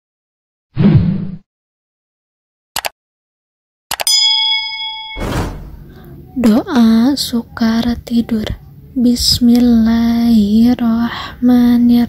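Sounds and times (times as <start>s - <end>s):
bell ding: 4.0s - 5.8s
short rushing noise: 5.2s - 6.0s.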